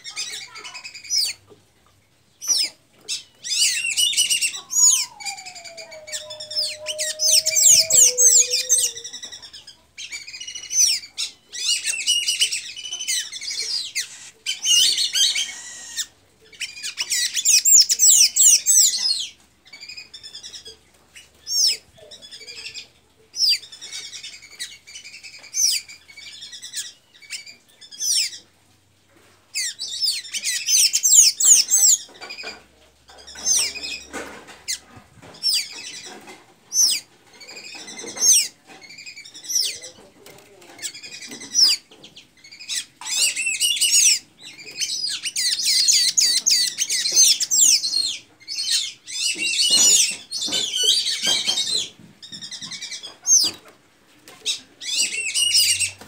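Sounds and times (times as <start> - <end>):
bird twittering: 2.4 - 20.6.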